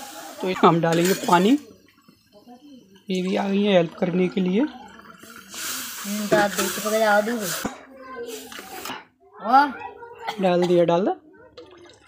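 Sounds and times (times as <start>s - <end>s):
milk pouring into hot pan: 0.0s - 7.7s.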